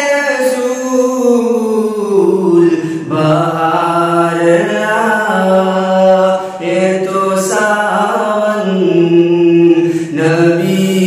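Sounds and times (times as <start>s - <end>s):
man singing devotional song: 0.0s - 11.0s.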